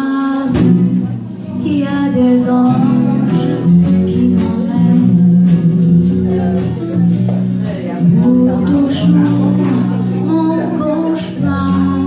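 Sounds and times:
guitar chords: 0:00.0 - 0:12.0.

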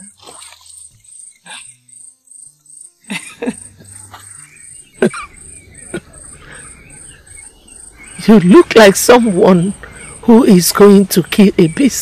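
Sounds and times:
insect chirping: 0:00.0 - 0:12.0
soft low background music: 0:00.0 - 0:12.0.

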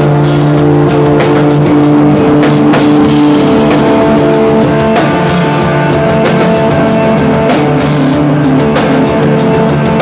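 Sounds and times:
loud rock band playing: 0:00.0 - 0:10.0.

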